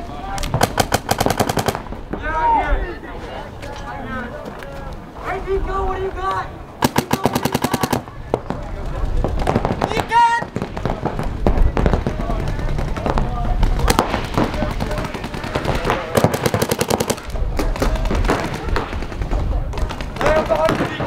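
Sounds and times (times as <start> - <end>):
paintball markers firing: 10.6 - 21.0.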